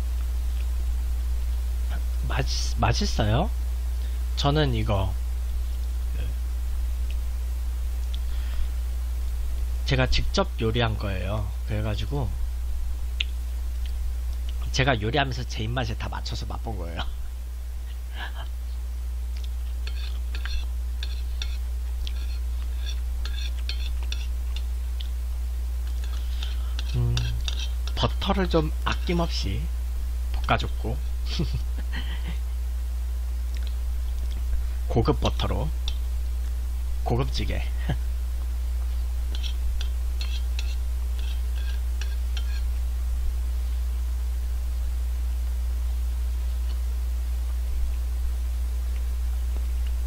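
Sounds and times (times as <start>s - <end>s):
low electrical hum: 0.0s - 50.0s.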